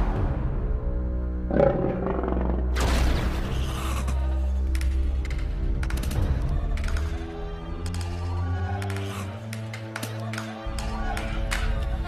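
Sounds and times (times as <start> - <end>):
roaring sound effect: 1.5 - 2.9
low drone: 1.5 - 3.0.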